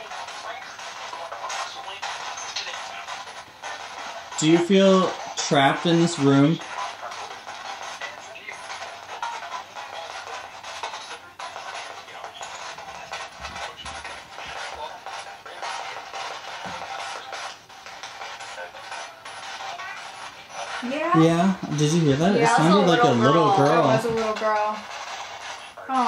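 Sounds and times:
broken broadcast snatches: 0.0 - 26.0
radio static in short bursts: 0.0 - 26.0.

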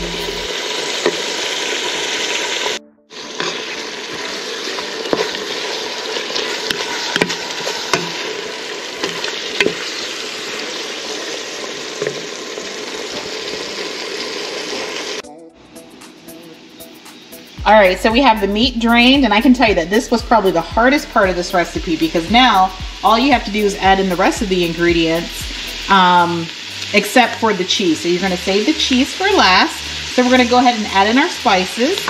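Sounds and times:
meat sizzling in a pot: 0.0 - 15.2, 18.9 - 32.0.

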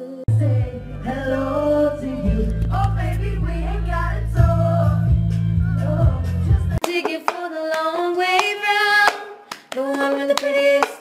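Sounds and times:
girls singing together: 5.8 - 11.0
sharp hand claps: 6.8 - 11.0.

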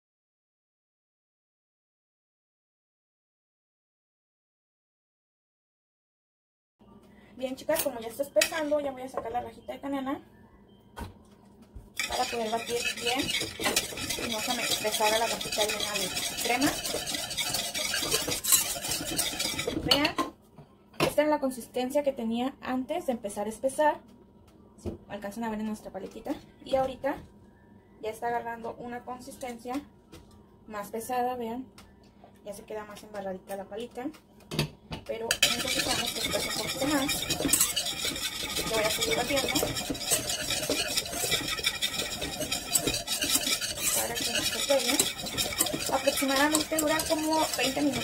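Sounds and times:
spatula scraping a saucepan: 7.6 - 9.0, 12.0 - 20.2, 35.3 - 48.0.

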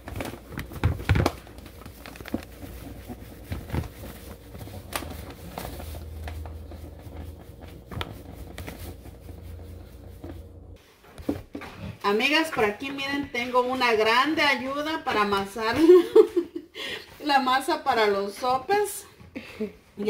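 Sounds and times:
paper bag crinkling: 0.0 - 10.6.

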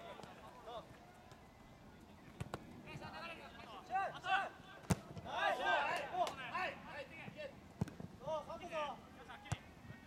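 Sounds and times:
football players shouting: 5.2 - 6.3.

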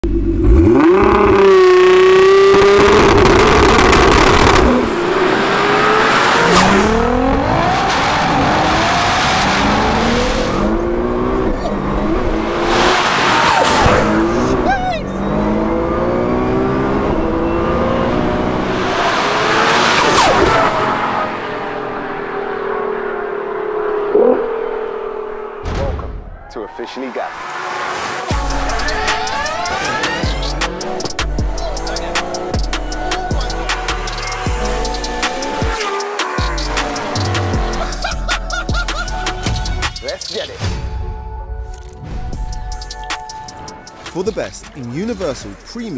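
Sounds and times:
car engine revving and accelerating: 0.0 - 25.6, 27.3 - 38.6.

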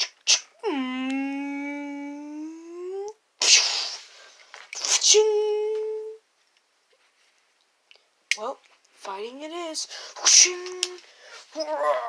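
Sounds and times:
person's long drawn-out vocal: 0.6 - 3.2
breathy hiss-like burst: 3.4 - 4.5.

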